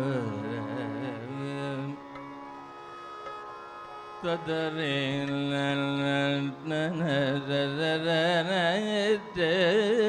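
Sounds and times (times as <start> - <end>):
man singing a long note: 0.0 - 2.0.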